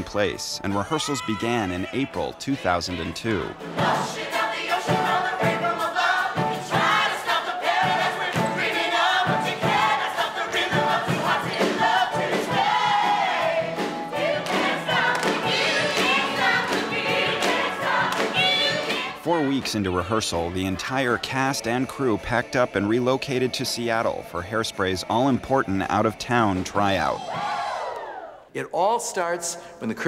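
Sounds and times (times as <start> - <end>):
group of voices singing: 0.7 - 28.3.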